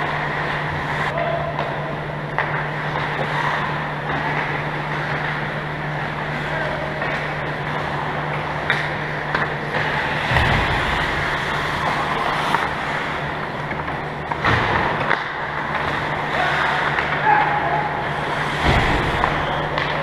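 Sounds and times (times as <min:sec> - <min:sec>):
steady low hum: 0:00.0 - 0:20.0
skates on ice: 0:02.4 - 0:20.0.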